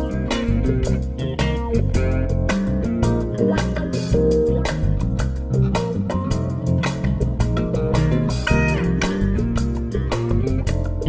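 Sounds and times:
electric guitar: 0.0s - 11.0s
funky electric bass guitar: 0.0s - 11.0s.

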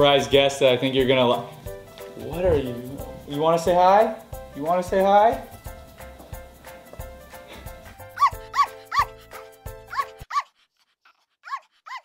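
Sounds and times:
background music: 0.0s - 10.3s
small dog yipping: 8.2s - 9.2s, 9.8s - 12.0s.

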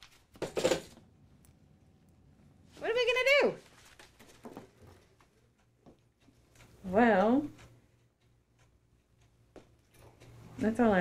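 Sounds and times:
paper pages being leafed through: 3.6s - 4.6s.

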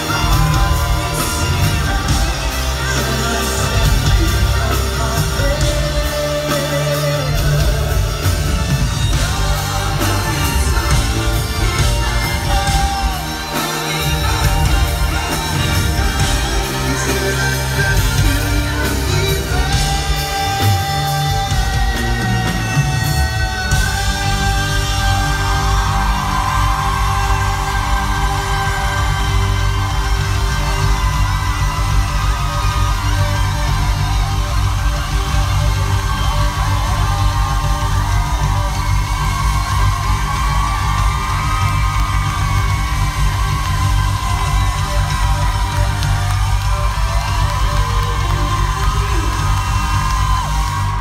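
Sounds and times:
audience whoops and cheers: 0.0s - 51.0s
heavy bass notes: 0.0s - 51.0s
live pop concert music: 0.0s - 51.0s.

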